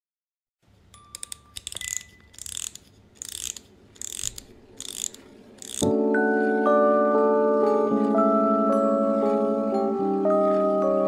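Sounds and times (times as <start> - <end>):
ratchet-like clicking bursts: 1.1 - 5.9.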